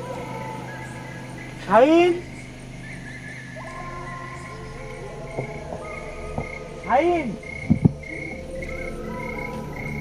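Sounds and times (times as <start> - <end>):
background music held tones: 0.0 - 10.0.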